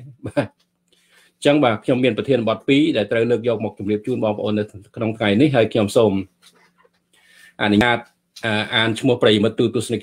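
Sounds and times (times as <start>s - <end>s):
man talking: 0.0s - 0.6s, 1.4s - 6.5s, 7.6s - 10.0s
faint breath in: 0.9s - 1.4s, 7.2s - 7.6s.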